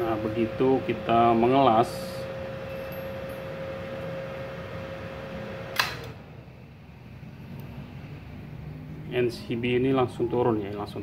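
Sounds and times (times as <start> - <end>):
welder whine and fan hum: 0.0 - 11.0
circuit breaker click: 5.7 - 6.2.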